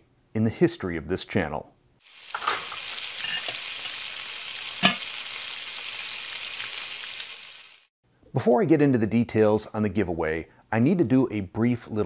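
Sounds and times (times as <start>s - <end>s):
food sizzling in a pan: 2.0s - 7.9s.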